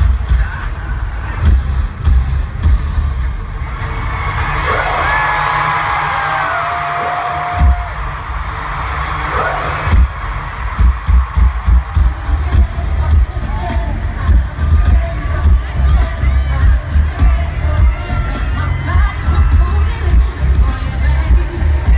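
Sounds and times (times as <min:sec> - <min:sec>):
crowd noise: 0:00.0 - 0:21.9
heavy bass beat: 0:00.0 - 0:21.9
live pop concert music: 0:00.0 - 0:21.9.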